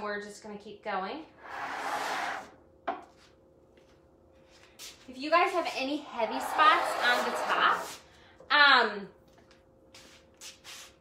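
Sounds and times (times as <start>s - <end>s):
scraping rub on work surface: 6.2s - 8.0s.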